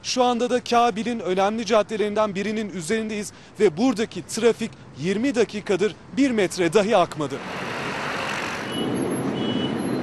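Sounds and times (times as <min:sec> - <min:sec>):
idling traffic rumble: 0:00.0 - 0:10.0.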